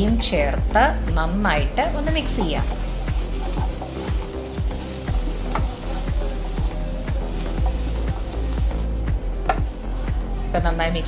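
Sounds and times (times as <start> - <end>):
onions sizzling in oil: 1.5 - 11.0.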